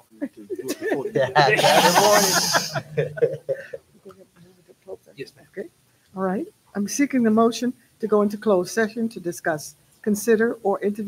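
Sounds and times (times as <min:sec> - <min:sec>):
overlapping talk: 0:00.5 - 0:03.8
people laughing: 0:00.5 - 0:03.8
loud breathy hiss: 0:01.6 - 0:02.8.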